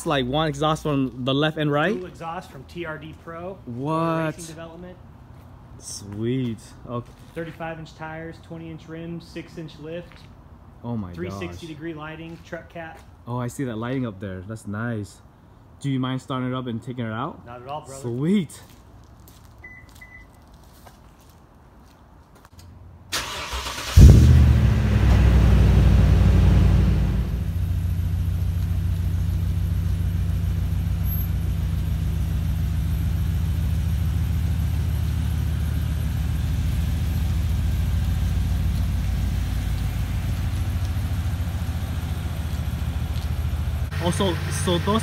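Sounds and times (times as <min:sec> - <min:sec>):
engine cranking and starting: 0:23.1 - 0:25.4
engine idling: 0:23.2 - 0:45.0.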